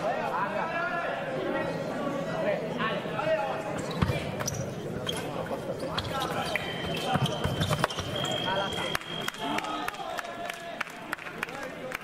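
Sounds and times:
voices in hall: 0.0 - 12.0.

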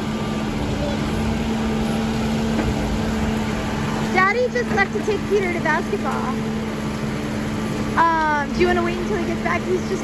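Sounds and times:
diesel engine rumbling: 0.0 - 10.0.

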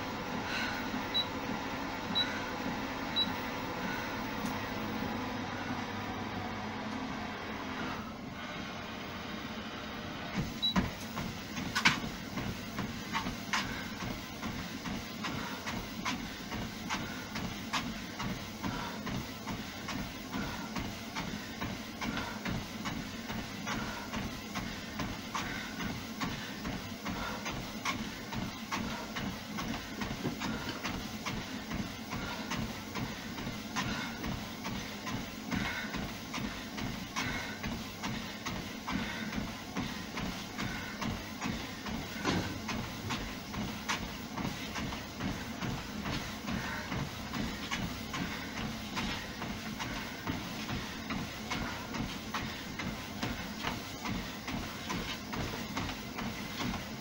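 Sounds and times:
treadmill motor and belt droning: 0.0 - 57.0
footfalls on treadmill belt: 10.3 - 57.0.

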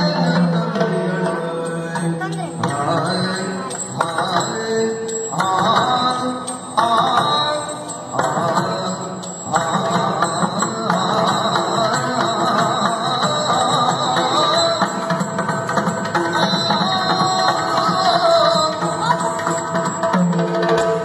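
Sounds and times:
person singing: 0.0 - 19.9
drumming: 0.0 - 21.0.

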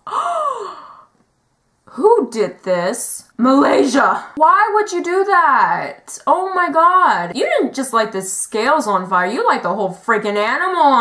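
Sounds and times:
woman gasping: 0.0 - 1.1.

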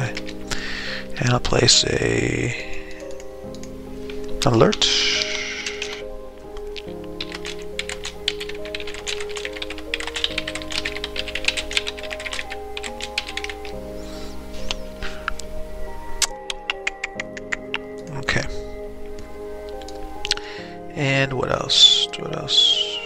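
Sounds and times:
background music with held chords: 0.0 - 23.0
keyboard typing clicks: 3.0 - 4.8, 5.6 - 13.8.

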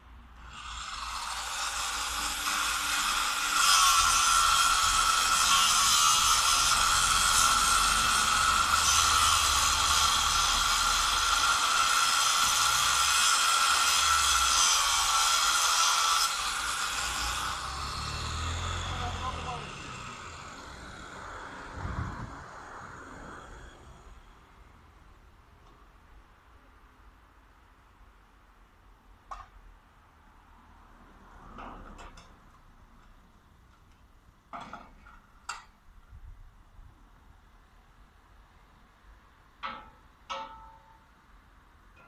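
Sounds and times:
angle grinder cutting steel: 0.4 - 24.3.

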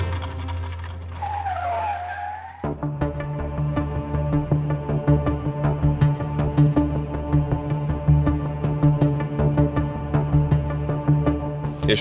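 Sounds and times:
car tyres screeching: 0.0 - 2.9
low music drone: 2.8 - 11.9.

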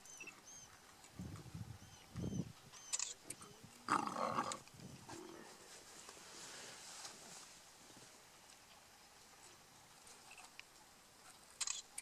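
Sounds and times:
faint bird chirps: 0.0 - 0.8, 1.7 - 3.7
lions growling and snarling: 3.8 - 5.5.

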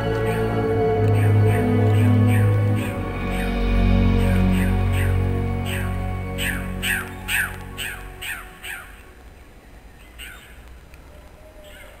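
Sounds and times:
background music: 0.0 - 9.4.

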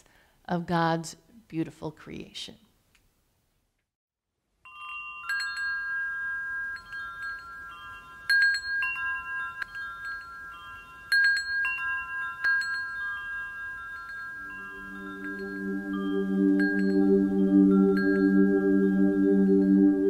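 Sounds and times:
low steady tone: 4.6 - 20.0
metal wind chimes ringing: 4.6 - 20.0.

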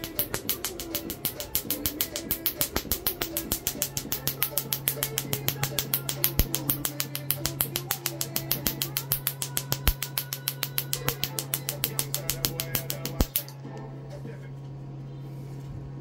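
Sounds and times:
laser firing snapping clicks: 0.0 - 13.6
machine humming low: 0.0 - 16.0.

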